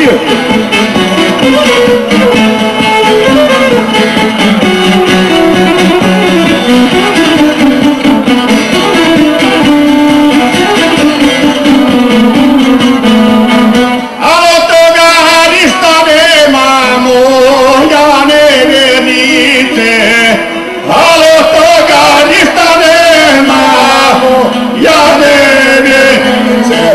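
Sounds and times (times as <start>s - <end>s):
plucked lute: 0.0s - 15.8s, 16.4s - 26.9s
violin: 0.0s - 26.9s
man singing: 14.2s - 26.9s.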